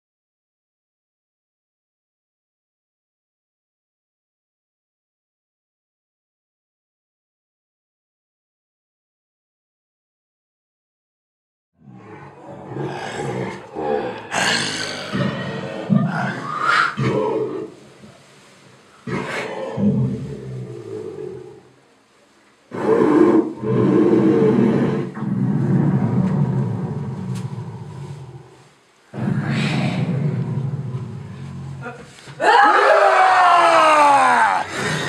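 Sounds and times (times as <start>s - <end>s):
dragon roaring: 11.8s - 17.8s, 19.0s - 21.7s, 22.7s - 35.0s.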